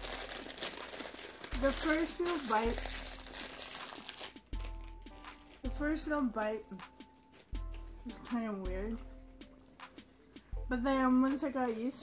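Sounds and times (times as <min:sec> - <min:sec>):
snack packet crinkling: 0:00.0 - 0:05.8
soft background music: 0:00.0 - 0:12.0.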